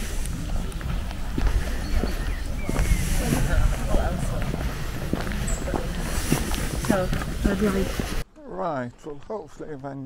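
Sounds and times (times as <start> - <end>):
footsteps on paved path: 0.0 - 10.0.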